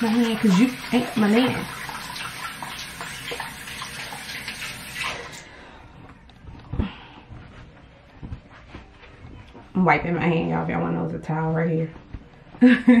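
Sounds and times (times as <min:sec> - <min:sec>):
water running from tap: 0:00.0 - 0:05.4.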